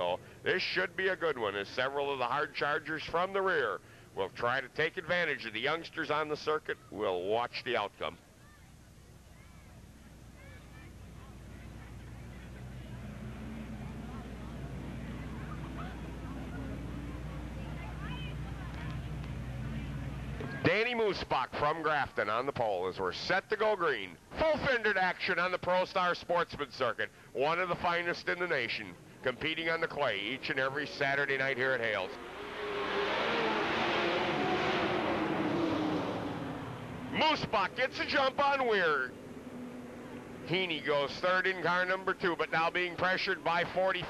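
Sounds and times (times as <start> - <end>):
race car engines droning: 0.0 - 7.3, 8.9 - 22.6, 26.4 - 44.0
faint voices: 6.6 - 21.0.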